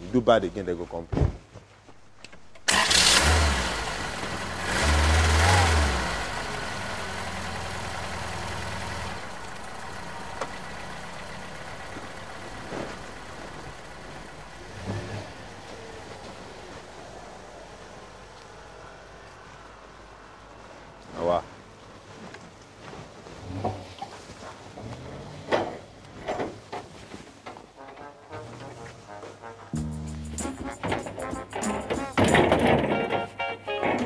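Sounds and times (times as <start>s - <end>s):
car engine starting and idling: 2.3s - 18.7s
engine revving: 2.7s - 17.0s.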